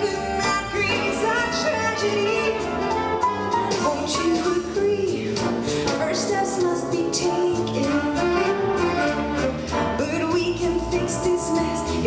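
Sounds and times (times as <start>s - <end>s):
woman singing: 0.0s - 2.7s, 3.8s - 8.6s, 10.0s - 12.0s
big band ballad with horns and piano: 0.0s - 12.0s.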